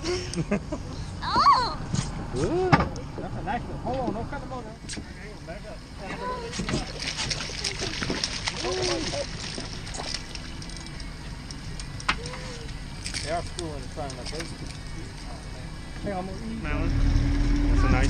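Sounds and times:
fish thrashing and splashing: 6.5s - 15.5s.

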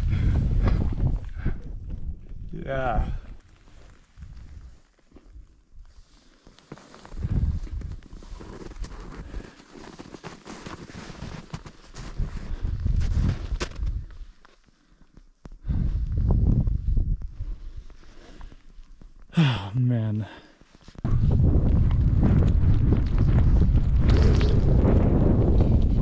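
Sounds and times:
wind buffeting microphone: 0.0s - 3.3s, 7.2s - 8.0s, 15.6s - 17.8s, 21.0s - 26.0s
footsteps crunching on snow: 6.7s - 13.6s.

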